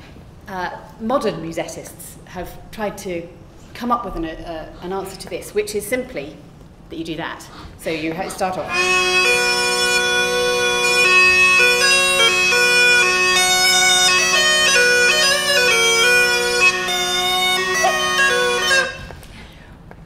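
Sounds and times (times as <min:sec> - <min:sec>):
bagpipe melody over drones: 0:08.7 - 0:19.2.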